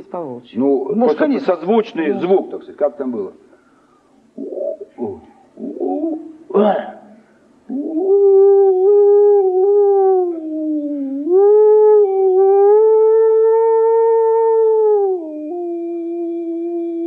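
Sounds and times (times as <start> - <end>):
man imitating wolf howl: 4.4 - 7.0, 7.7 - 17.0.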